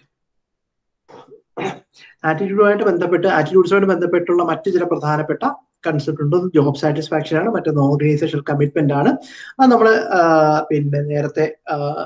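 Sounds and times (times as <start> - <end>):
man clearing throat and coughing: 1.1 - 2.2.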